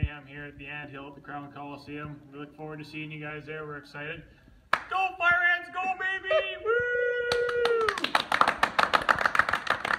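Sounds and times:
men clapping: 4.7 - 5.0, 7.3 - 9.9
man shouting: 4.9 - 8.0.

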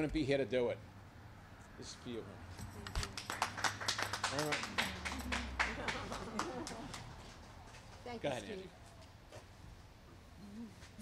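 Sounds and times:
people clapping: 2.9 - 8.1.

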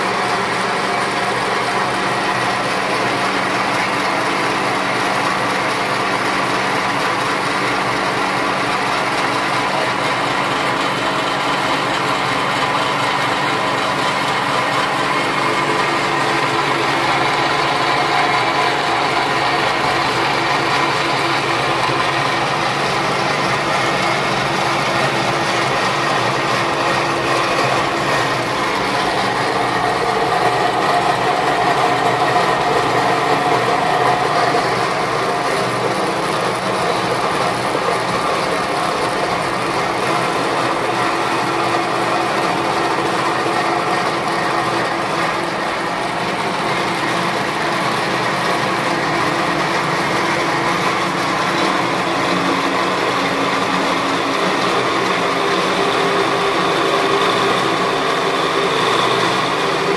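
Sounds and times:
roller grinding on die: 0.4 - 59.9.

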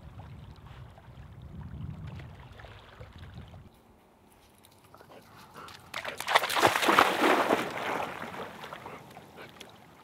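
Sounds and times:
dog splashing in water: 5.8 - 9.7.

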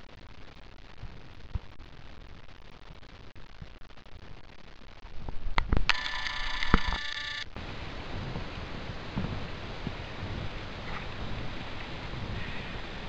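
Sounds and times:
steady noise: 0.0 - 13.0
sharp clicks: 5.6 - 7.5
high electronic tone: 5.9 - 7.5.

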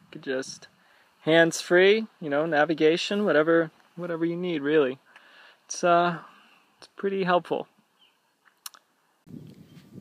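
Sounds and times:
faint steady hiss: 0.0 - 10.0
sharp clicks: 8.5 - 8.9.

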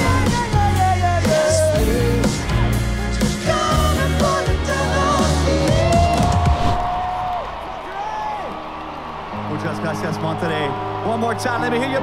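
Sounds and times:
drums: 0.0 - 8.6.

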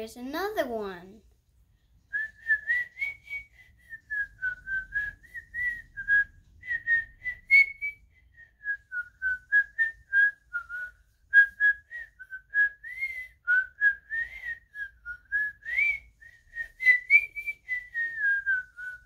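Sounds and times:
boy whistling a melody: 2.1 - 19.0.

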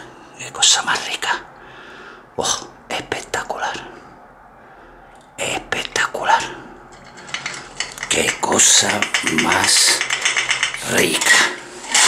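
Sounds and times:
whispered speech: 0.4 - 1.5, 2.4 - 4.0, 5.4 - 6.6.

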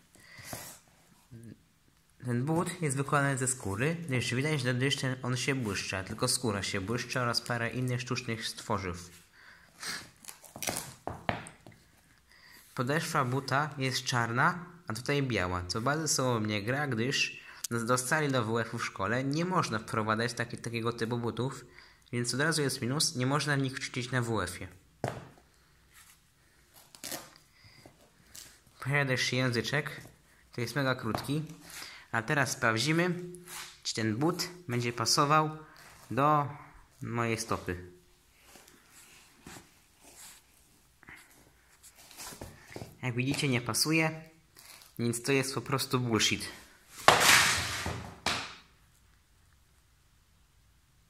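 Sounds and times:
shoe being handled: 0.4 - 0.9, 10.0 - 12.0, 25.0 - 28.7, 31.0 - 31.8, 38.4 - 40.6, 41.3 - 43.5, 47.0 - 48.5
shoe scraping across floor: 0.4 - 1.2, 33.3 - 33.9, 38.4 - 40.7, 41.7 - 43.5, 46.9 - 48.4
shoe knocking on laminate floor: 11.0 - 11.8, 25.0 - 25.4
sneaker thumping on floor: 25.0 - 25.4
velcro strap ripping open: 26.8 - 27.4.

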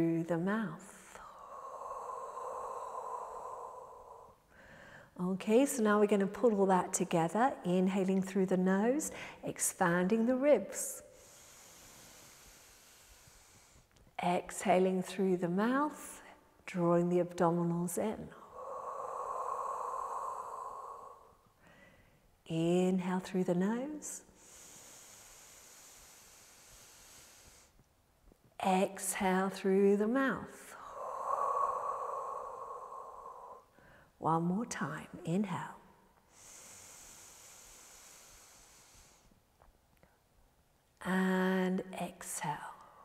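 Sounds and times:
woman exhaling slowly: 1.0 - 5.2, 11.0 - 13.9, 18.4 - 22.1, 24.4 - 27.8, 30.1 - 34.2, 36.3 - 39.3
slow inhale through nose: 1.2 - 5.2, 11.0 - 13.9, 18.4 - 22.2, 24.2 - 27.9, 30.6 - 34.2, 36.2 - 39.4.

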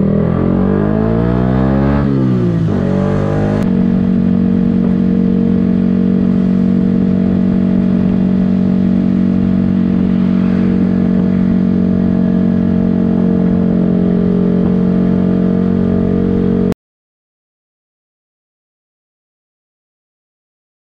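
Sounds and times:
motorcycle engine running: 0.0 - 16.8.

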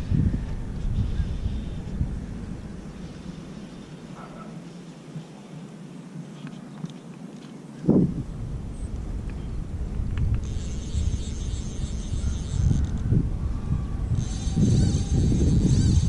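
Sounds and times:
wind rumbling on microphone: 0.0 - 6.9, 7.8 - 16.0
high steady buzz: 9.6 - 13.3, 14.0 - 16.0.

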